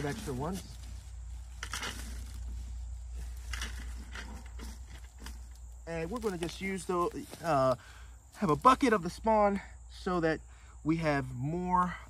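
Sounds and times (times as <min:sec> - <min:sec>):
dry wood chips rustling: 0:00.0 - 0:09.3
steady low rumble: 0:00.0 - 0:11.4.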